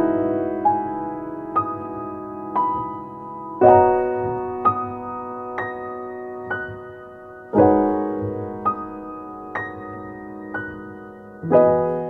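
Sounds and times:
soft solo piano: 0.0s - 12.0s.

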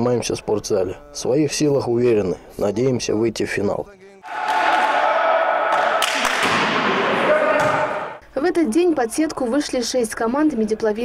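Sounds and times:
sports hall noise: 4.0s - 9.3s
volleyball struck: 4.3s - 8.2s.

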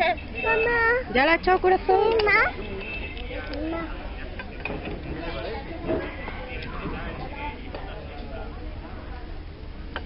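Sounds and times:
background voices talking: 1.1s - 10.0s.

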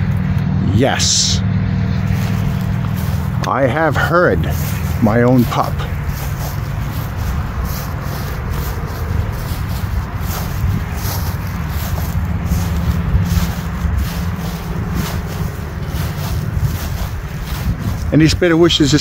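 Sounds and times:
footsteps: 1.8s - 19.0s
wind buffeting microphone: 1.9s - 19.0s
faint rustling: 2.0s - 18.4s.

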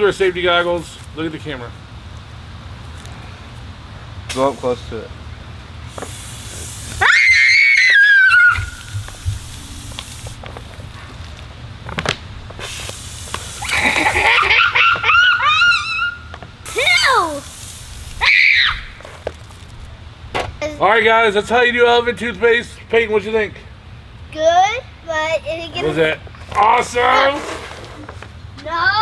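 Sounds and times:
high-pitched screams and squeals: 6.9s - 9.2s, 13.6s - 17.5s, 18.1s - 19.0s.

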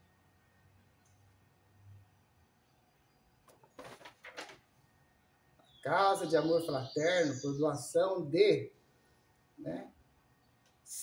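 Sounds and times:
paper crackling rustles: 3.5s - 4.7s.

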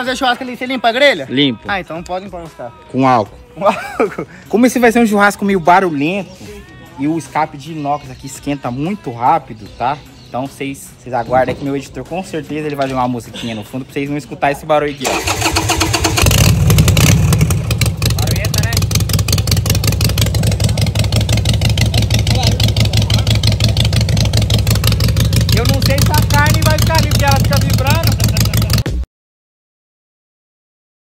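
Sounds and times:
motorcycle engine running loud: 16.2s - 28.9s.

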